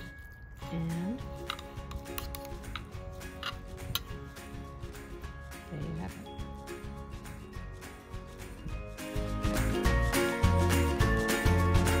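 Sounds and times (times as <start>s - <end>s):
background music with held notes: 0.0s - 12.0s
knife and fork scraping a plate: 1.3s - 4.2s.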